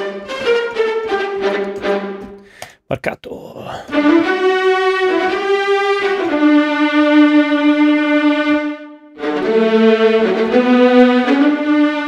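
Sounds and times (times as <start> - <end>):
viola section playing tremolo: 0.0 - 2.4, 3.9 - 12.0.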